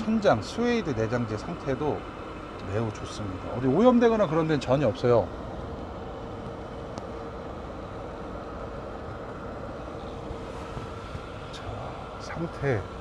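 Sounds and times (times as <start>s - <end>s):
air conditioning blower: 0.0s - 13.0s
faint steady hum: 0.0s - 13.0s.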